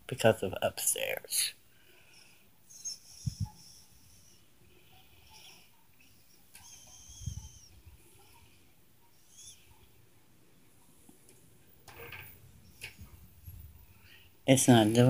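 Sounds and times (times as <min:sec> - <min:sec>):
faint high-pitched squeaks: 0:02.0 - 0:10.1.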